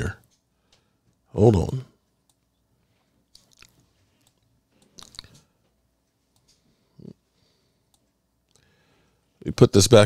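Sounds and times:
computer mouse clicking: 3.3 - 5.5.

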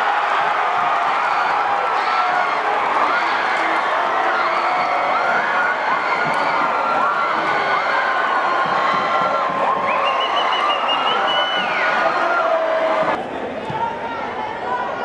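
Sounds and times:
stadium crowd cheering and shouting: 0.0 - 15.0.

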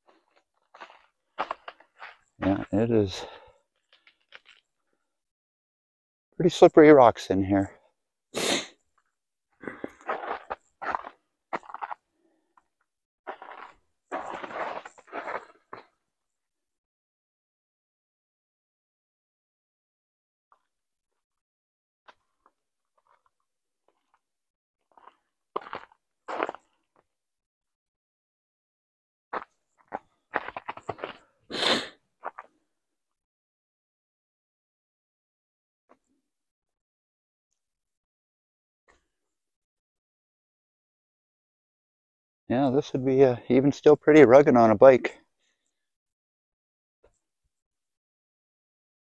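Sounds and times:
person sneezing: 8.4 - 8.8, 31.5 - 32.0
footsteps on dry leaves and rock: 13.3 - 15.5.

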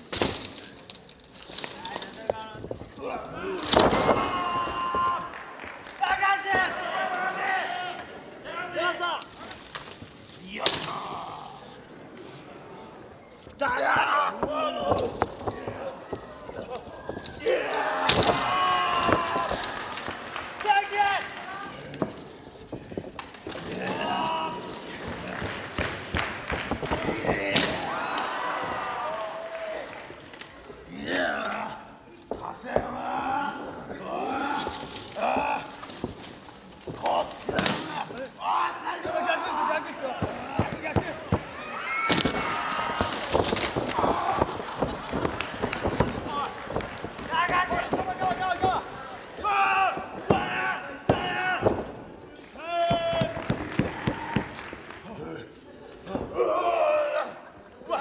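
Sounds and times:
people shouting: 3.1 - 5.4, 16.6 - 20.0, 26.9 - 29.8, 36.9 - 46.6, 47.3 - 51.8, 56.2 - 58.0
crowd handclaps: 5.2 - 6.4, 19.0 - 21.6, 25.0 - 27.4, 28.1 - 30.7, 43.0 - 49.5, 52.4 - 55.6.

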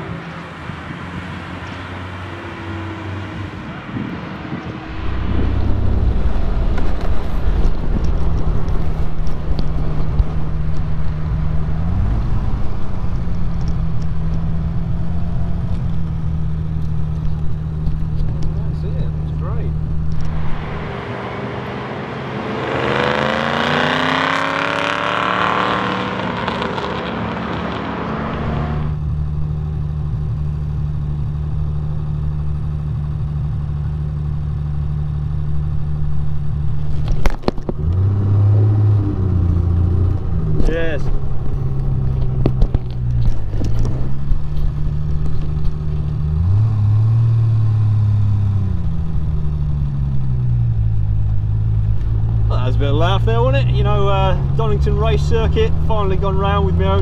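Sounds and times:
car passing by: 0.0 - 9.2, 20.2 - 29.0
car engine droning: 0.0 - 57.0.

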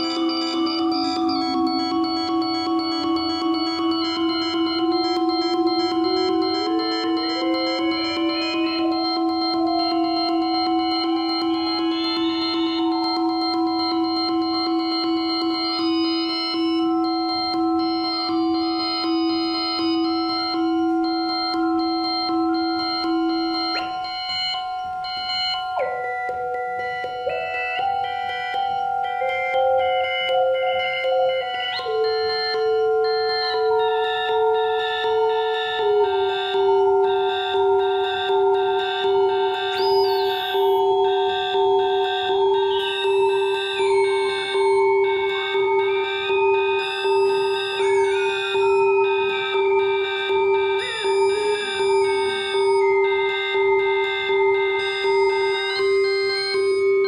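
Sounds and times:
pulsing electronic rhythm: 0.0 - 57.0
sustained synthesizer tones: 0.0 - 57.0.

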